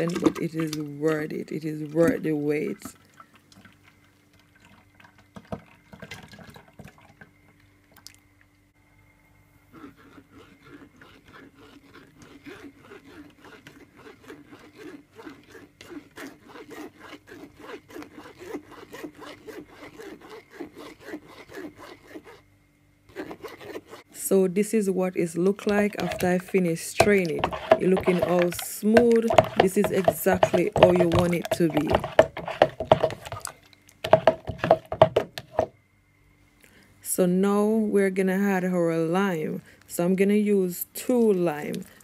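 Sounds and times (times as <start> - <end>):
small liquid sounds: 0.0 - 8.6, 25.4 - 34.3
spoon scraping mesh strainer: 25.3 - 35.7.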